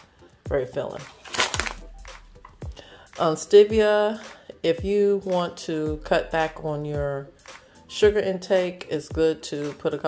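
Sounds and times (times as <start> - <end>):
plastic pouch crinkling: 1.1 - 2.0.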